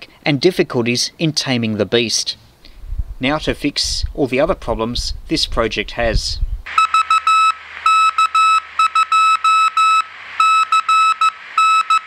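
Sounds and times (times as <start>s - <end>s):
morse code beeps: 6.7s - 12.0s.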